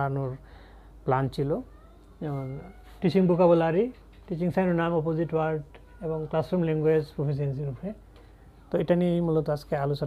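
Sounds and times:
man speaking: 1.0s - 8.0s, 8.7s - 10.0s.

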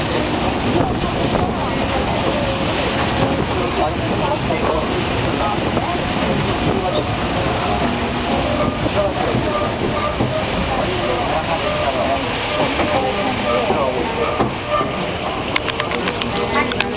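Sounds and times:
people chattering: 0.0s - 16.9s
vehicle rumble: 0.0s - 16.9s.

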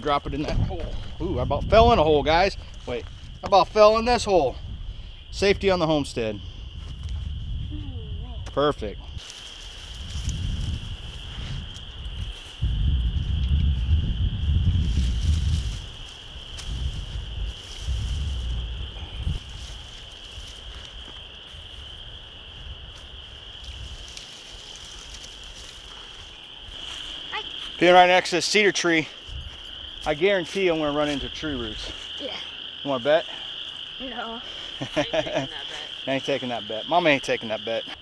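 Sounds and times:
wind rumble on microphone: 0.0s - 26.8s, 29.3s - 30.0s
insects calling: 0.0s - 38.0s.

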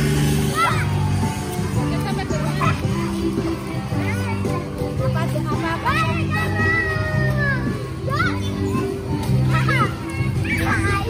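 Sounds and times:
children calling out: 0.0s - 5.1s, 5.8s - 11.0s.

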